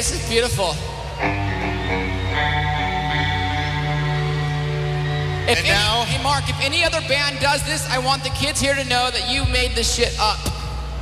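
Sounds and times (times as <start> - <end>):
rock band holding a sustained chord: 0.9 - 8.3.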